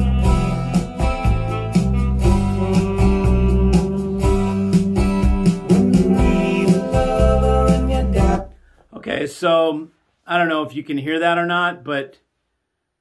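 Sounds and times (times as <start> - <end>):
strong bass line: 0.0 - 8.5
song over loudspeakers: 0.0 - 8.6.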